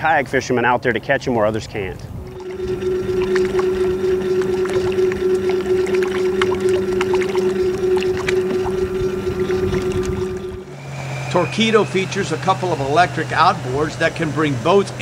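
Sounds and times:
electric motor humming: 2.4s - 14.8s.

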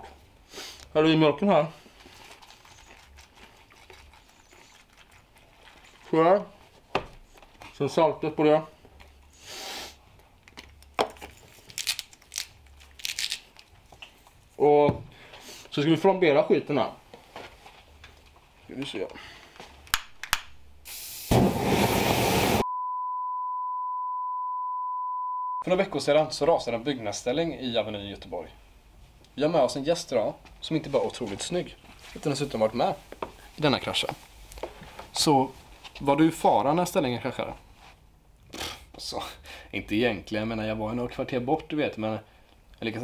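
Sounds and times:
aerosol spray hissing: 20.9s - 22.6s
flame rushing: 20.9s - 22.6s
high test-tone beep: 22.7s - 25.6s.

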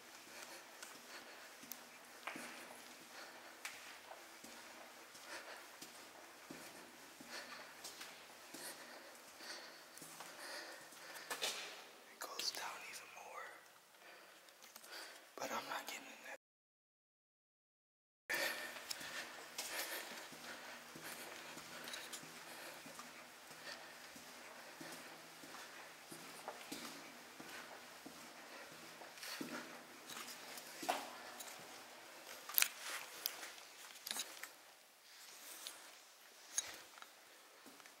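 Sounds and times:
footsteps on gritty concrete: 0.2s - 8.8s, 18.3s - 34.6s.

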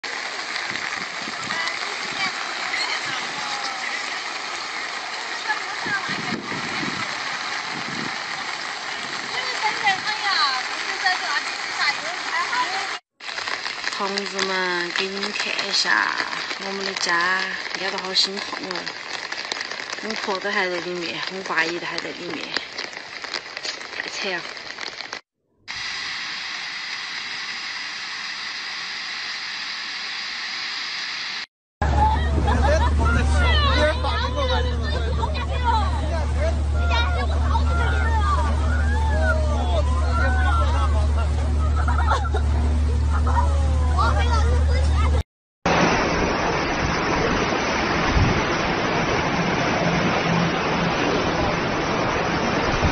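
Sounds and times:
floodwater rushing: 0.0s - 52.9s
voices talking: 1.4s - 7.3s, 14.0s - 19.0s, 31.8s - 45.2s
loud low hum: 31.8s - 52.9s.

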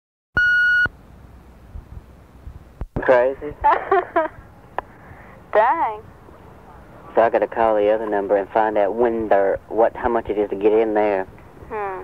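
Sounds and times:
electronic beep: 0.4s - 0.9s
faint low hum and hiss: 0.4s - 12.0s.

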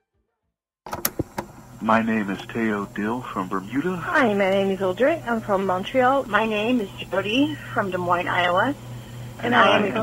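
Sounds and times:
background hiss: 1.0s - 10.0s
person speaking: 9.4s - 10.0s.

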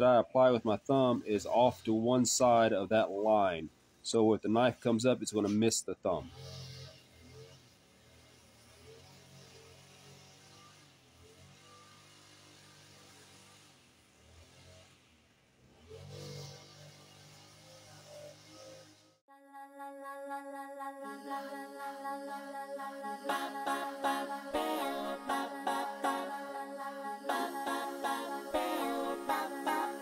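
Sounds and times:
background music: 19.3s - 30.0s.

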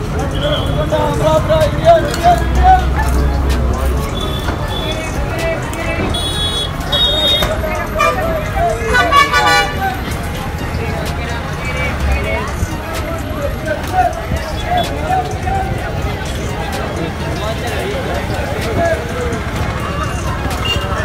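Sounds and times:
bus engines rumbling: 0.0s - 21.0s
crowd chatter: 0.0s - 21.0s
vehicle horns tooting: 0.2s - 2.4s, 4.0s - 10.0s, 20.5s - 21.0s.

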